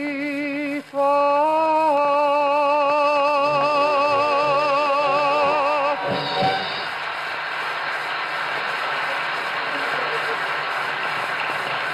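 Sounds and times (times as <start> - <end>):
old recording hiss: 0.0 - 11.9.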